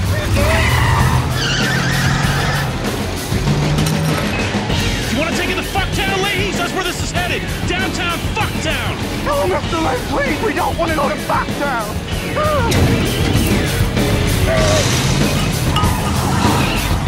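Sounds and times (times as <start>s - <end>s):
car engine driven hard: 0.0s - 17.0s
soundtrack music: 0.0s - 17.0s
tyres skidding: 0.0s - 17.0s.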